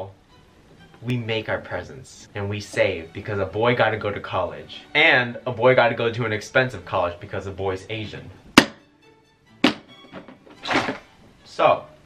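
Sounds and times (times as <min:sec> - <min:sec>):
toolbox lid clattering open: 0:09.6 - 0:11.1.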